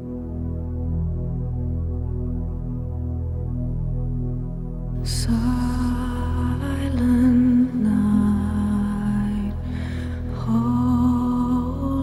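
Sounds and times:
steady low drone: 0:00.0 - 0:12.0.

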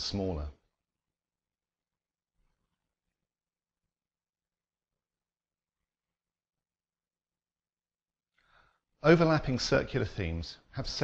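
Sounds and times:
narrator speaking: 0:00.0 - 0:00.6.

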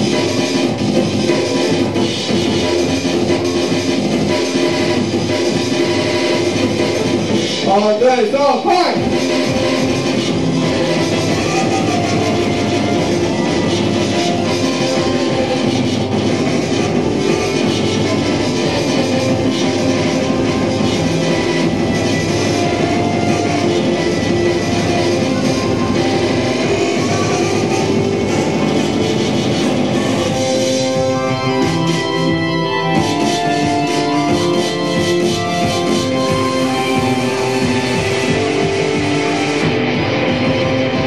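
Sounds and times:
live rock music with guitar: 0:09.0 - 0:41.0.

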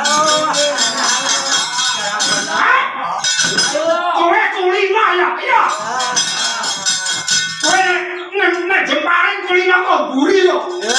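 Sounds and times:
metallic clinking of plates: 0:00.0 - 0:02.6, 0:03.2 - 0:03.9, 0:05.7 - 0:07.8.

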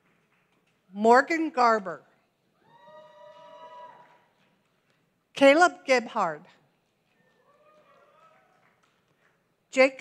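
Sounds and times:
distant person cheering woo: 0:02.6 - 0:04.3.

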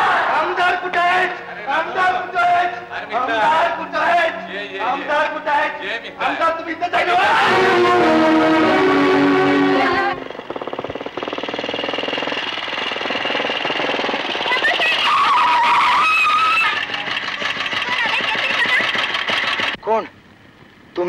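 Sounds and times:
voices calling out: 0:06.8 - 0:10.4, 0:13.6 - 0:19.4
motorcycle engine running: 0:07.3 - 0:19.8.

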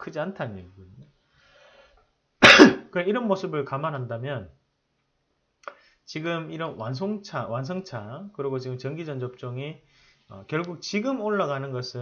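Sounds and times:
man's cough-like vocal burst: 0:02.4 - 0:02.9.

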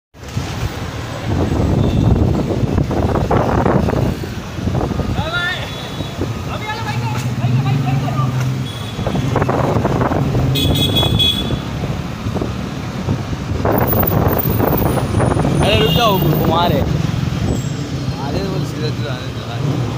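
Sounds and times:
vehicles running past: 0:00.2 - 0:19.9
people's voices: 0:05.0 - 0:10.0, 0:15.5 - 0:17.1, 0:17.9 - 0:19.9
vehicle horn honking: 0:10.5 - 0:11.7.

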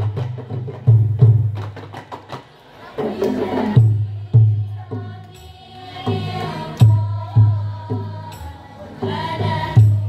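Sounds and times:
girls chanting in unison: 0:02.6 - 0:10.0.

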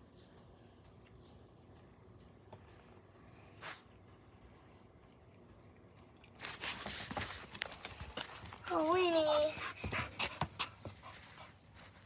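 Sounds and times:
dog panting: 0:08.3 - 0:12.0.

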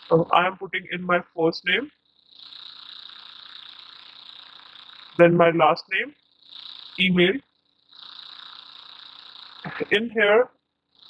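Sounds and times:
faint high-pitched hiss: 0:00.0 - 0:11.0.

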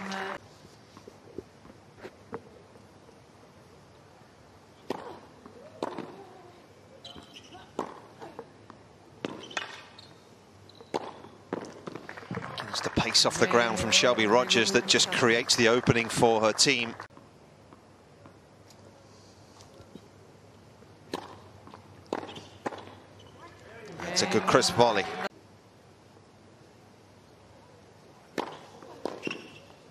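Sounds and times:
shoe squeaks: 0:07.0 - 0:07.7, 0:09.3 - 0:10.9, 0:22.2 - 0:22.6, 0:23.2 - 0:23.5, 0:29.2 - 0:29.8
tennis ball bouncing: 0:07.8 - 0:08.1, 0:10.9 - 0:12.4, 0:21.1 - 0:23.0
racket striking tennis ball: 0:21.1 - 0:21.4.

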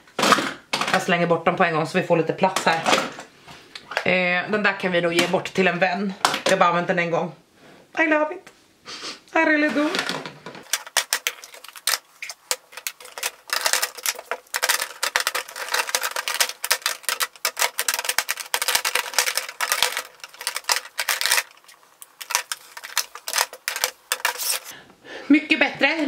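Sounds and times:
makeup cases clicking together: 0:10.6 - 0:24.7.

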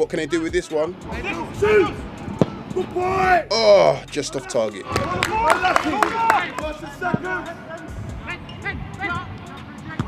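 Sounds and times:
footballers shouting: 0:00.3 - 0:10.0.

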